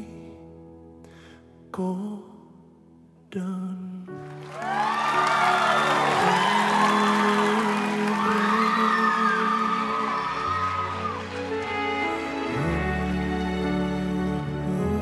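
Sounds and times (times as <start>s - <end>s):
audience applause: 4.2s - 14.1s
audience cheering and whooping: 4.4s - 12.3s.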